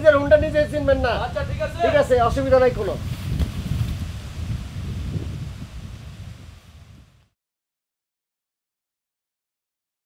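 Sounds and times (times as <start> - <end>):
wind buffeting microphone: 0.0 - 7.4.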